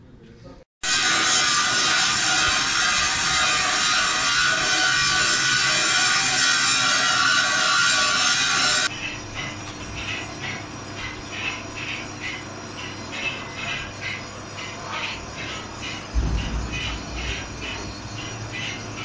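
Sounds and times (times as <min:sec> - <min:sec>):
scriber scratching steel plate: 0:00.8 - 0:19.0
loud steady hissing: 0:14.5 - 0:19.0.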